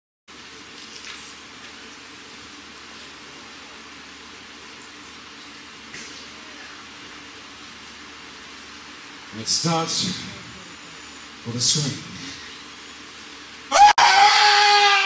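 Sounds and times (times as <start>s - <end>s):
room tone hiss: 0.3s - 15.0s.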